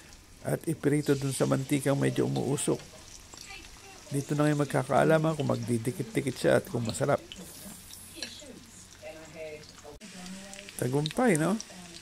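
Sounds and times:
hot oil sizzling in a skillet: 0.0s - 12.0s.

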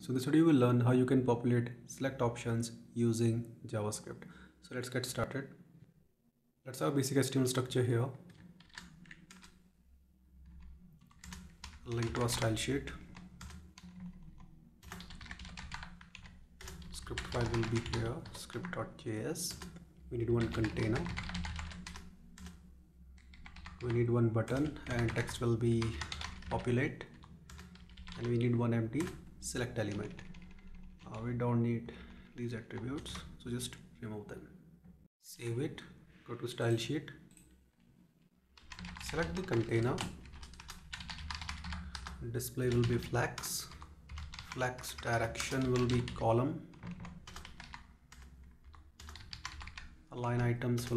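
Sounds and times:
typing on computer keyboard: 8.3s - 9.6s, 10.4s - 18.8s, 19.5s - 22.6s, 23.2s - 31.0s, 38.6s - 50.0s.

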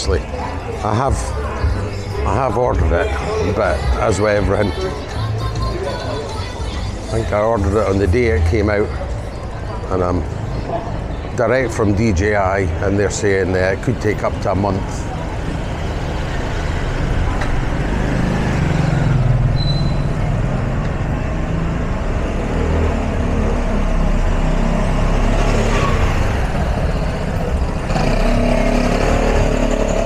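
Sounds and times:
car and motorbike engines: 0.0s - 30.0s.

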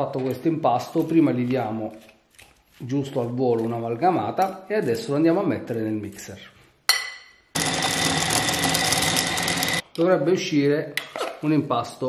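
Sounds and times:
food processor motor whine: 7.6s - 9.8s.

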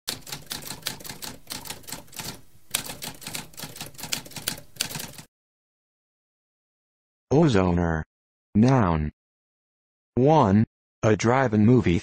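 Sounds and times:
typewriter keystroke clacks: 0.1s - 5.3s.

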